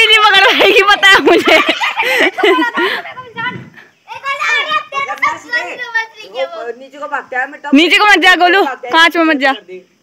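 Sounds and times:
children calling and shouting: 0.0 - 9.5.

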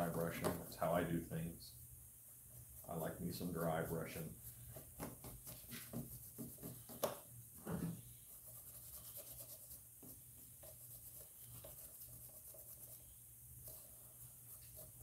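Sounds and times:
paintbrush bristles scratching: 2.6 - 7.0, 8.2 - 15.0.

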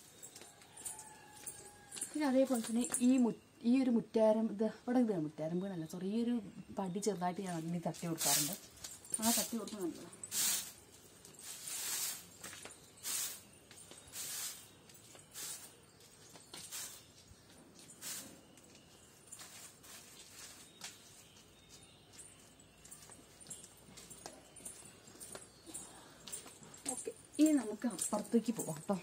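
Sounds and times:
broom sweeping dry leaves: 8.0 - 17.2, 17.8 - 18.6, 19.2 - 21.5.

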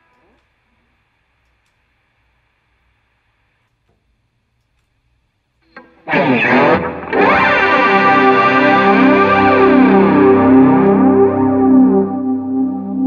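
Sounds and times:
electric guitar chords: 5.8 - 13.0.

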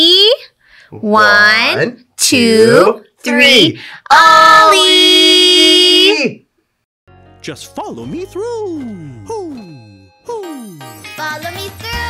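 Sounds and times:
children's music jingle: 7.1 - 12.0.

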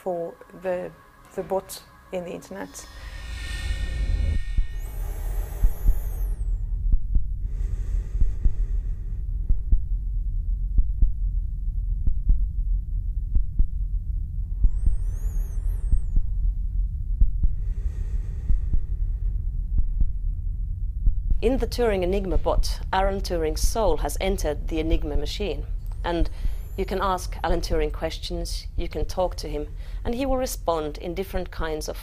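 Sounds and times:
wavering high whistles: 0.0 - 6.8, 14.6 - 16.4
deep throbbing electronic hum: 0.0 - 32.0
hiss swells: 0.4 - 6.7.

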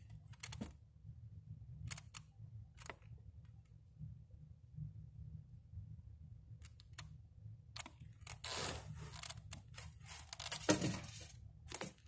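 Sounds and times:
low hum: 0.0 - 10.2
rustling scrape: 8.4 - 12.0.

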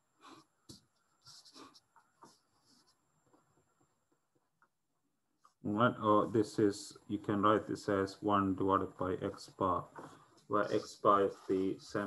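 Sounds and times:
pen scratching on paper: 0.2 - 3.0, 10.0 - 12.0.

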